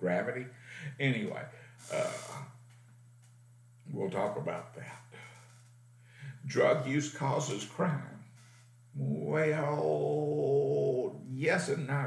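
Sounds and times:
man speaking: 0.0 - 2.5, 3.9 - 5.2, 6.2 - 8.2, 9.0 - 12.0
steady low hum: 0.0 - 12.0.

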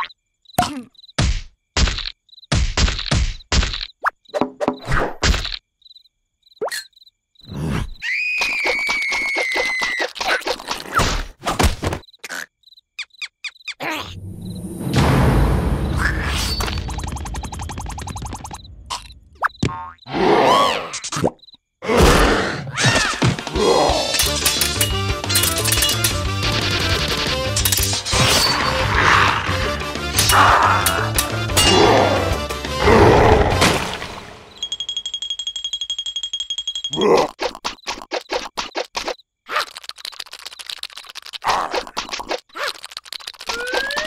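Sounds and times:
cartoon voice squeals: 8.0 - 10.5, 43.5 - 44.0
comic cartoon music: 14.9 - 18.5, 22.8 - 34.6
rapid clicking and scratching effects: 16.4 - 19.2, 23.3 - 28.6, 37.2 - 44.0.

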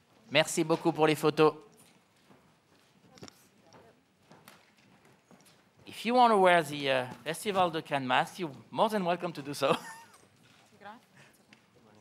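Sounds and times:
faint taps and rustles: 1.6 - 5.9.

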